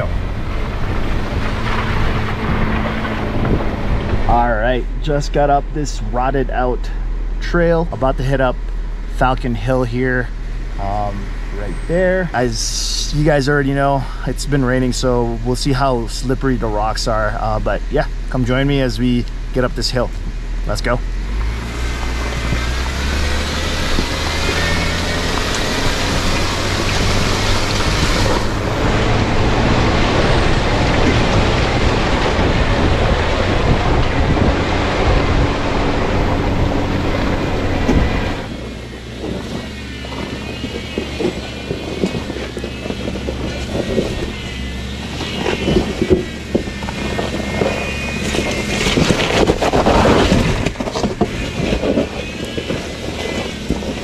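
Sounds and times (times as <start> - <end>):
wind rush: 0.0 - 5.2, 21.4 - 44.5
vehicle engine: 0.0 - 54.0.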